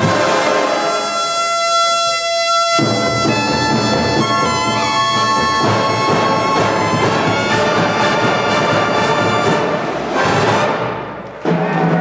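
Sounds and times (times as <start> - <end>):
horn line holding a long note: 0.0 - 11.0
full drum and bugle ensemble: 0.0 - 12.0.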